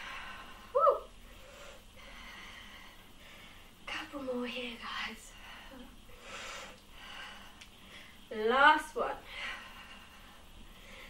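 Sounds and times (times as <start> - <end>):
woman breathing hard: 0.0 - 3.8, 5.3 - 8.3, 9.2 - 11.0.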